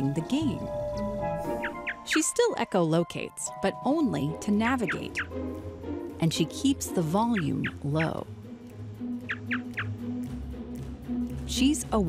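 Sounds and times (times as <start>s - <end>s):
background music with low drone: 0.0s - 12.0s.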